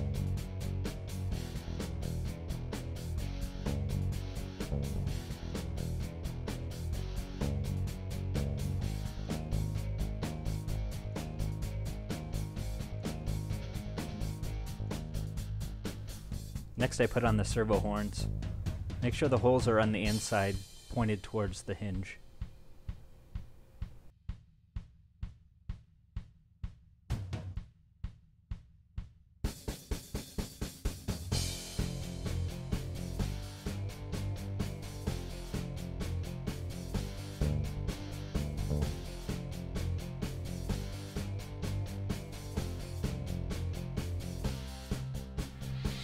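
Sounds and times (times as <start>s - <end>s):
backing music track: 0.0s - 22.2s, 31.3s - 46.0s
drum beat: 12.2s - 46.0s.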